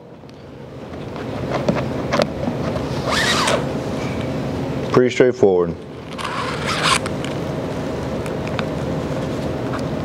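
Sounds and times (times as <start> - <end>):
cable zip: 3.0 - 3.7, 6.1 - 7.1
cable sliding through lace guides: 6.2 - 7.1.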